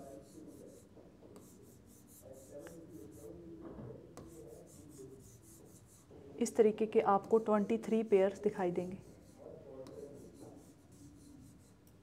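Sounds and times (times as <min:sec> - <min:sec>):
stylus scratching on touchscreen: 0:00.0 - 0:11.9.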